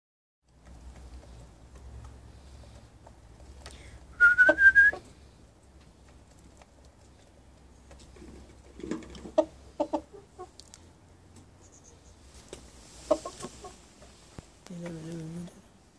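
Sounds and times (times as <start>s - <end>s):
rooster clucking: 8.8s - 10.9s, 13.0s - 14.1s.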